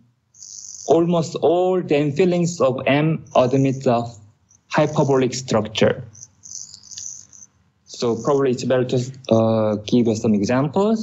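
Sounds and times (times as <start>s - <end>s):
faint high-pitched hiss: 0.0s - 11.0s.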